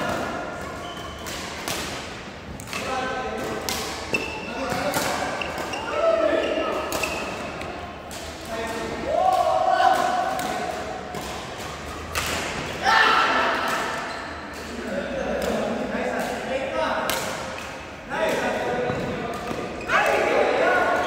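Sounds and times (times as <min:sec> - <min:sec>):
racket hitting shuttlecock: 0:00.1 - 0:05.8, 0:06.7 - 0:14.7
shoes squeaking on floor: 0:00.7 - 0:01.4, 0:04.0 - 0:07.6, 0:13.9 - 0:14.6, 0:18.8 - 0:20.1.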